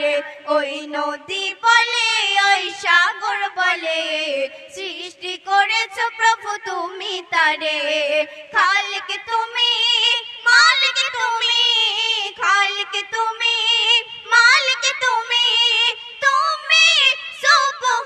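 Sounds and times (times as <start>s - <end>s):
girls singing through a pa: 0.0s - 18.0s.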